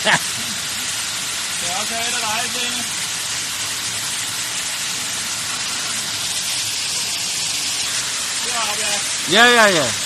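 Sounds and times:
waterfall rushing: 0:00.0 - 0:10.0.

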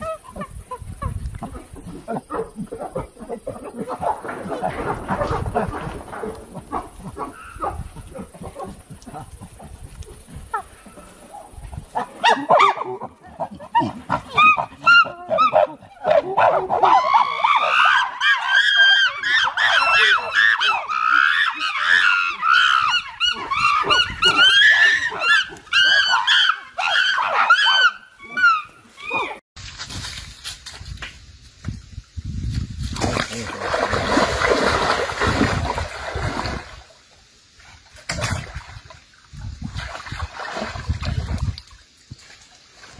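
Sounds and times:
chimpanzees hooting and screaming: 0:12.2 - 0:29.4
splashing in water: 0:32.8 - 0:42.9.

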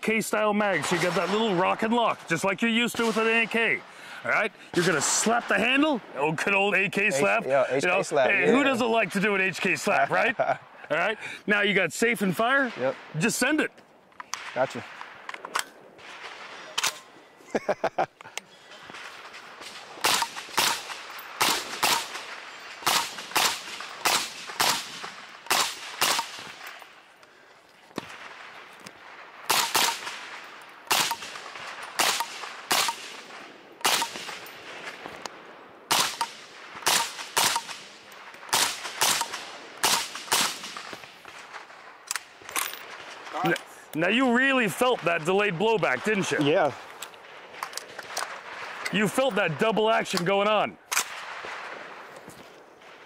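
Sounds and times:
suppressed rifle shots: 0:18.9 - 0:26.8, 0:28.0 - 0:35.0, 0:35.9 - 0:43.3.

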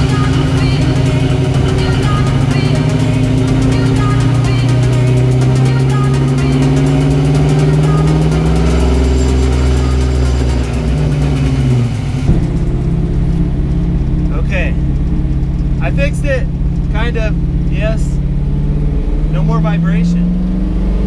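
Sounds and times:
engine and driveshaft drone: 0:00.0 - 0:21.0
engine and road noise in car cabin: 0:00.0 - 0:21.0.

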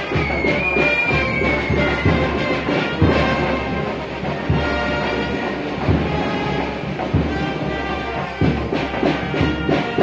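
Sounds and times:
band music: 0:00.0 - 0:10.0
low drum beat: 0:00.2 - 0:10.0.

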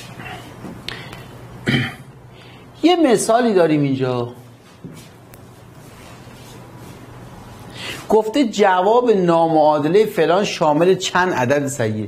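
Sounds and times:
person coughing: 0:01.6 - 0:02.2.

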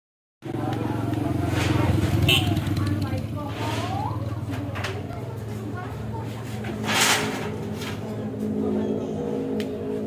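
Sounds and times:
voices talking: 0:00.5 - 0:09.9.

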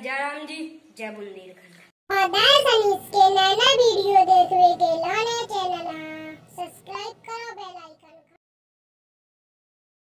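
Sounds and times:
child-like voice singing a chant: 0:02.1 - 0:08.3.

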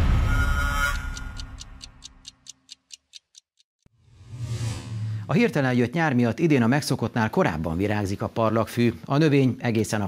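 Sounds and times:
tv theme music: 0:00.0 - 0:02.4
clock-like ticks: 0:00.8 - 0:03.8.

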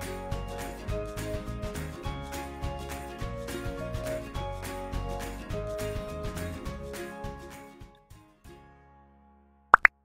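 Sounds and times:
background music: 0:00.0 - 0:09.9.

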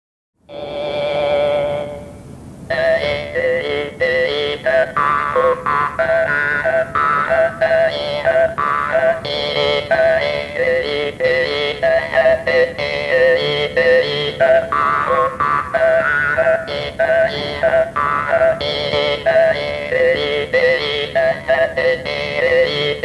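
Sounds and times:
jaw harp playing: 0:00.5 - 0:23.0.

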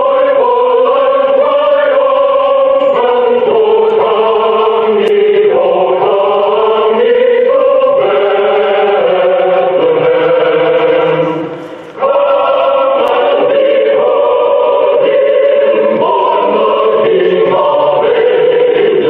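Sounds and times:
choir singing long chords: 0:00.0 - 0:19.0.

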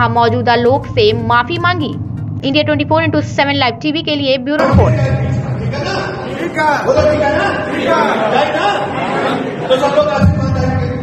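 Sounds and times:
man talking into a microphone: 0:04.6 - 0:09.0, 0:09.6 - 0:11.0
crowd chatter: 0:04.6 - 0:11.0.

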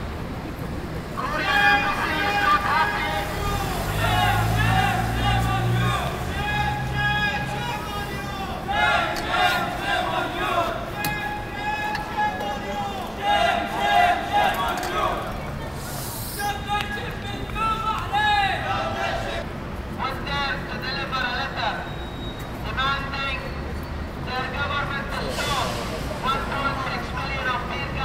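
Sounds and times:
street noise: 0:00.0 - 0:28.0
people talking loudly: 0:01.2 - 0:19.4.

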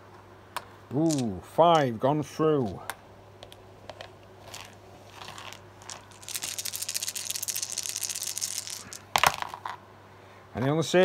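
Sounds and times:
dice rattling and rolling: 0:01.0 - 0:01.4, 0:03.4 - 0:09.8.

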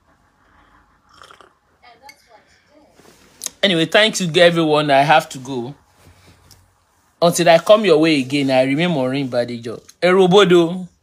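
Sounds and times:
person sipping and swallowing: 0:01.0 - 0:01.6.

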